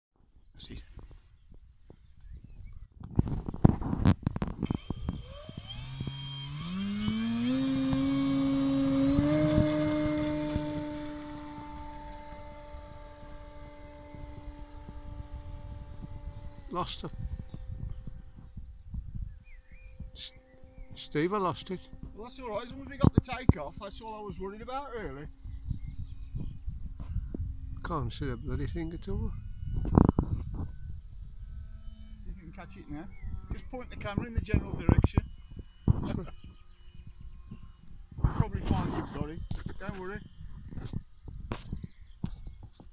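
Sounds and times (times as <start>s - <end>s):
wind rumbling on microphone: 0.5s - 42.9s
model plane electric motor humming: 3.0s - 42.9s.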